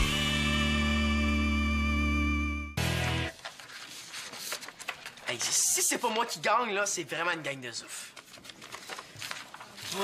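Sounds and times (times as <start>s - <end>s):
paper rustling and shuffling: 3.3s - 6.5s, 7.9s - 10.0s.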